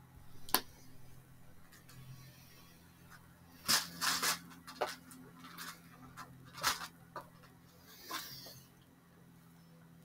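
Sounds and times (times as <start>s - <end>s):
packaging crinkling and clicking: 3.7s - 7.5s.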